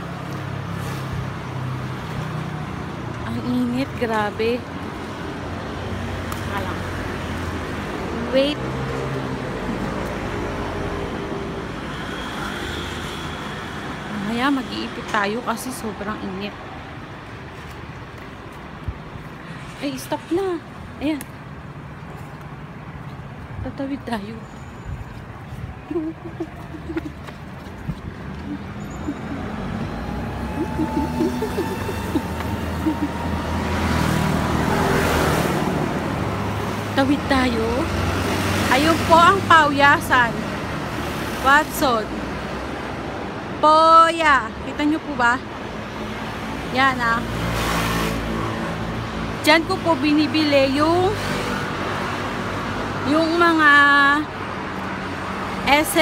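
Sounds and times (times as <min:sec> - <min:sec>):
road traffic rumble: 0:00.0 - 0:56.0
vehicles passing close by: 0:00.0 - 0:56.0
car engines running: 0:25.7 - 0:39.5
vehicle passing close by: 0:26.5 - 0:41.4.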